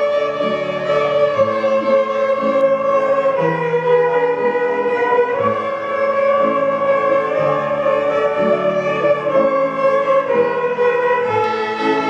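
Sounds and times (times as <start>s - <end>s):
children's violins playing: 0.0s - 12.0s.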